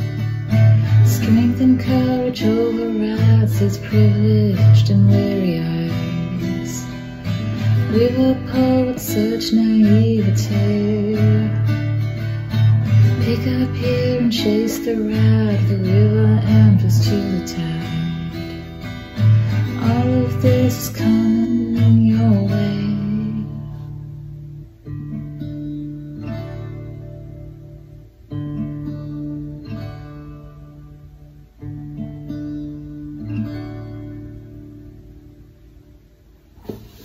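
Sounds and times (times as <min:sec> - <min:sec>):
acoustic guitar strumming: 0:00.0 - 0:37.0
person singing: 0:00.9 - 0:07.0, 0:07.8 - 0:11.8, 0:13.0 - 0:18.3, 0:19.6 - 0:23.9
soft thud: 0:36.6 - 0:37.0.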